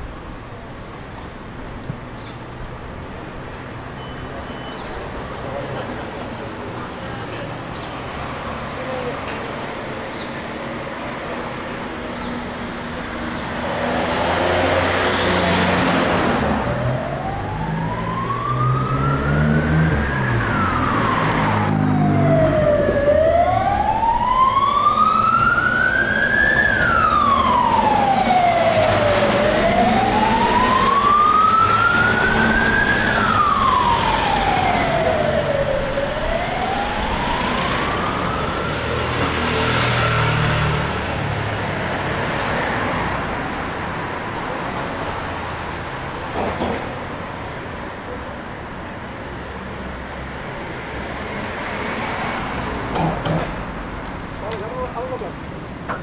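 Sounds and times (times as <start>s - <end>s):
street traffic rumble: 0.0s - 56.0s
emergency vehicle siren wailing: 14.4s - 43.9s.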